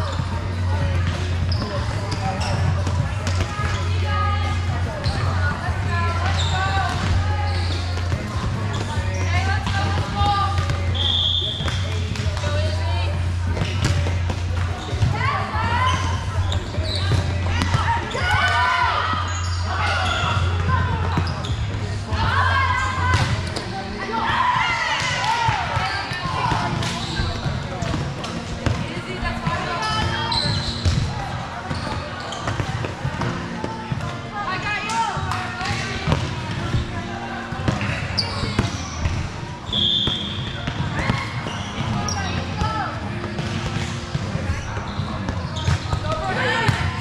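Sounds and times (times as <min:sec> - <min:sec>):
people talking and calling: 0:00.0 - 0:47.0
referee whistle: 0:10.9 - 0:11.7, 0:39.7 - 0:40.6
volleyball hit and bouncing: 0:13.5 - 0:15.2, 0:34.8 - 0:36.9, 0:37.6 - 0:47.0.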